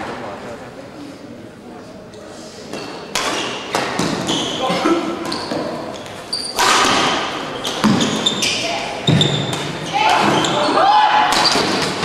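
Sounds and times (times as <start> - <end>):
shoe squeaks on court: 4.2 - 6.7, 7.5 - 9.5
racket striking shuttlecock: 6.5 - 8.1.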